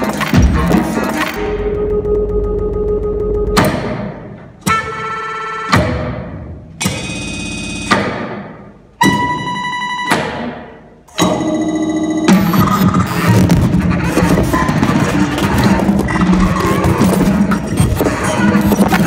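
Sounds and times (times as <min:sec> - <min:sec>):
percussion attacks: 0:00.0 - 0:05.1, 0:12.3 - 0:19.0
electronics: 0:11.2 - 0:19.0.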